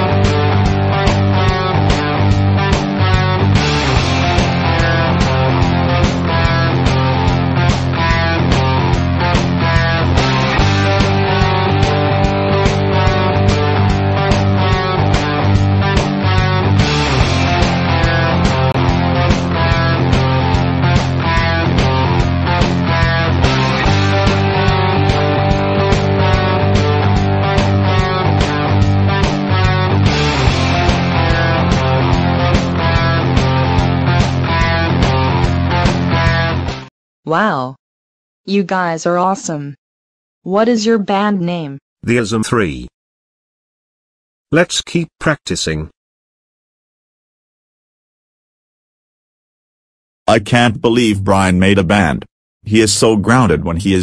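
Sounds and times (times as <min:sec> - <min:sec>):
rock music with guitar and drums: 0:00.0 - 0:36.9.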